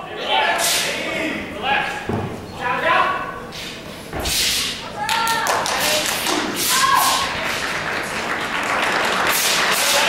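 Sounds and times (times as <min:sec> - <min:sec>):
murmur of large hall: 0:00.0 - 0:10.0.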